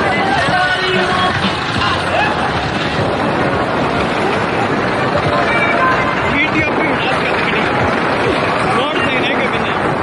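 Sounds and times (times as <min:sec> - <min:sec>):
tractor diesel engines running: 0:00.0 - 0:10.0.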